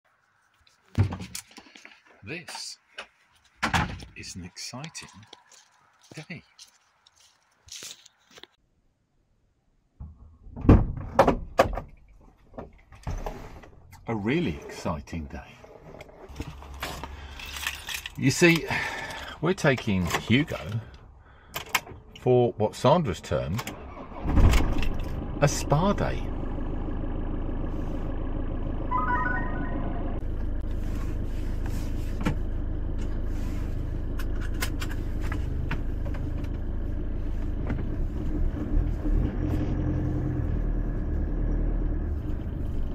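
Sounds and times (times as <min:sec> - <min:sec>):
van engine idling: 0:25.1 - 0:28.9, 0:29.8 - 0:38.3
electronic dashboard chimes: 0:28.9 - 0:30.2.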